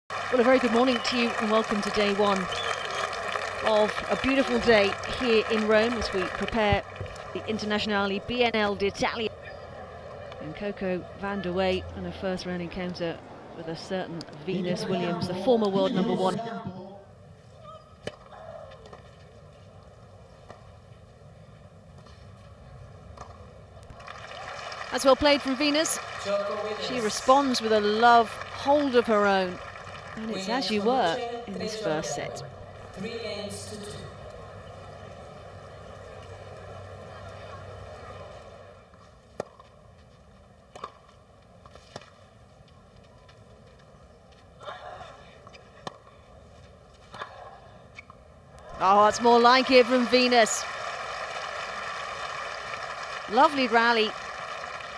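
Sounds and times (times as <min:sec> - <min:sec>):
quiet crowd: 0:00.2 - 0:50.6.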